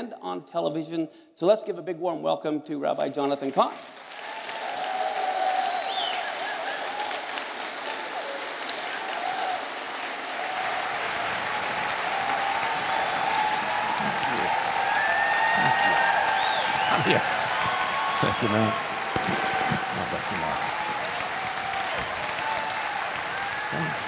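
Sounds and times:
large audience applauding: 0:03.7 - 0:24.0.

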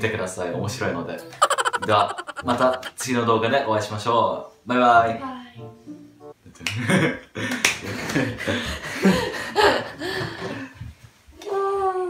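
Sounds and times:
breathy laughter: 0:01.4 - 0:03.1.

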